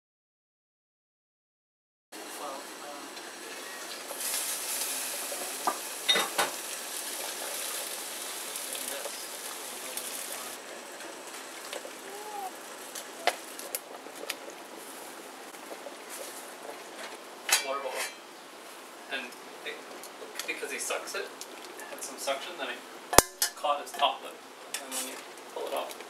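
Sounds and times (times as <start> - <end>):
water boiling in a pot: 2.2 - 26.0.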